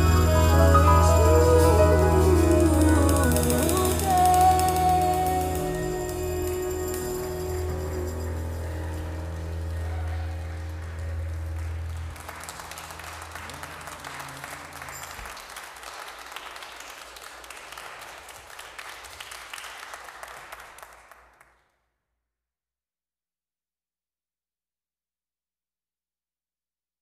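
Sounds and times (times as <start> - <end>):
held instrumental chord: 0.0 - 14.8
congregation applauding: 0.0 - 21.6.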